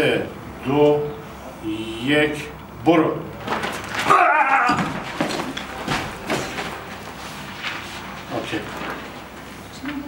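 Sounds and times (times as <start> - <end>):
loud wavering yell: 4.0 - 5.0
body knocking on concrete floor: 4.7 - 6.5.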